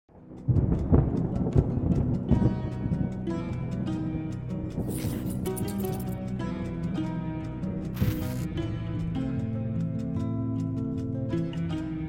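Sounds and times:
thunder rumbling and crackling: 0.1s - 3.1s
music bed: 0.3s - 12.0s.

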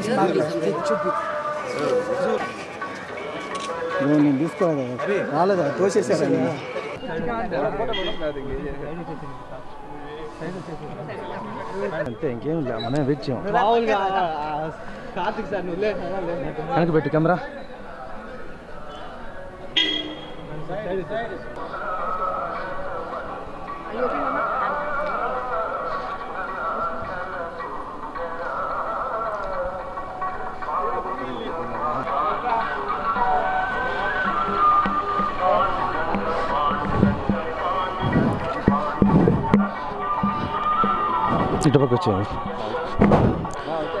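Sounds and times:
crowd voices talking and calling: 0.0s - 44.0s.

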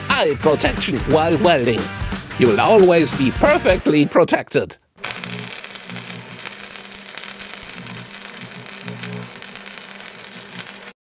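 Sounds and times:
crackling hissing welding arc: 5.0s - 11.0s
low electric buzz: 5.0s - 11.0s.

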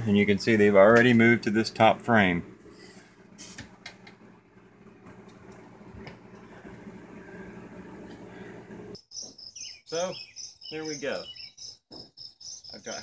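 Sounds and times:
high pulsing insect chirping: 9.0s - 13.0s.

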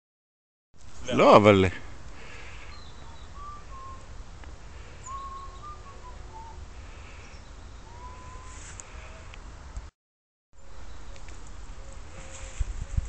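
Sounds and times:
birds calling: 1.2s - 9.4s
short thin whistled bird notes: 2.7s - 4.1s, 5.0s - 6.6s, 7.9s - 8.8s.

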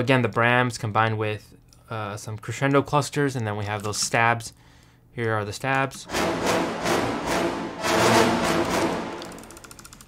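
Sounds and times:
orchestral action music: 6.1s - 9.6s.

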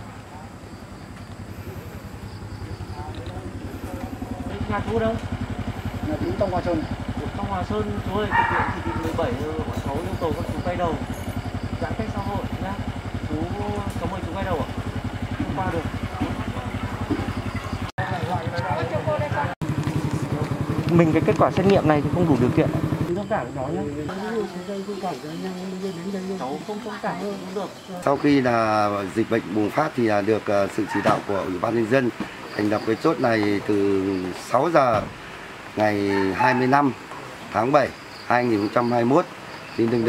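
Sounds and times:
small motorcycle engine idling: 0.0s - 40.0s
people talking: 2.6s - 11.2s, 11.8s - 17.4s, 18.0s - 35.1s, 35.8s - 40.0s.

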